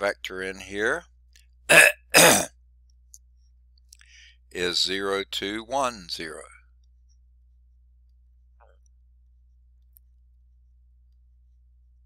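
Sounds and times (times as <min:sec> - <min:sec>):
man coughing: 0:01.7 - 0:02.5.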